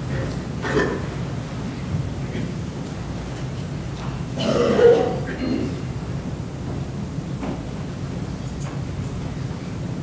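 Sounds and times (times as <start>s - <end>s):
low room noise: 0.0s - 10.0s
person clearing throat: 0.6s - 1.1s, 4.4s - 5.8s.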